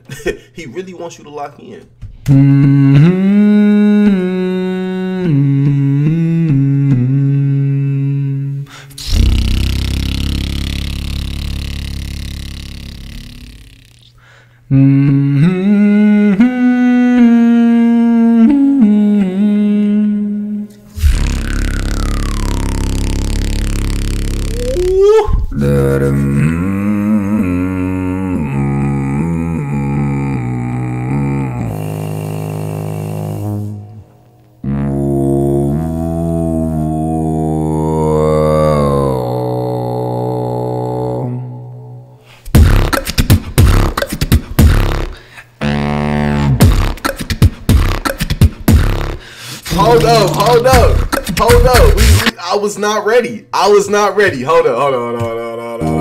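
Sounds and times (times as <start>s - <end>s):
beatboxer deep bass: 2.2s - 4.4s, 9.0s - 14.2s, 21.0s - 41.3s, 42.5s - 52.4s, 55.2s - 56.0s
beatboxer humming notes: 2.2s - 41.5s, 42.5s - 52.4s, 54.9s - 56.0s.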